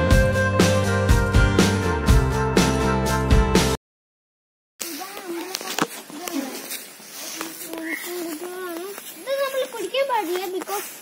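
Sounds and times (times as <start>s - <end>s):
child talking: 4.8s - 11.0s.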